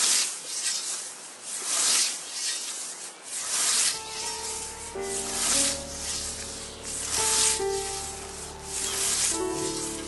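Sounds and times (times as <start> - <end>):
scythe swishing through grass: 0.0 - 10.0
soft background music: 3.9 - 10.0.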